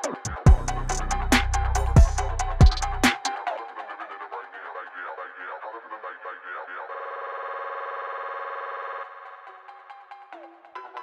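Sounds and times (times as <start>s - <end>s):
buzzy synthesizer chord: 0.5s - 3.1s.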